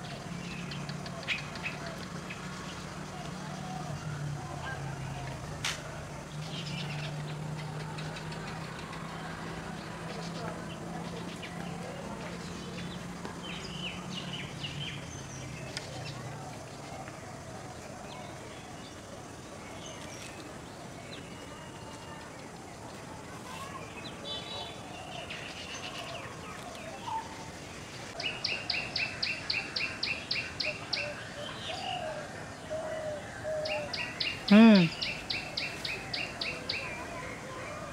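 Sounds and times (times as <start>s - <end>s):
faint high bird calls: 23.3s - 37.9s.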